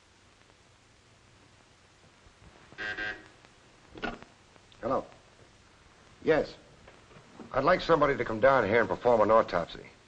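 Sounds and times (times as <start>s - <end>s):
desk telephone ringing: 2.8s - 3.3s.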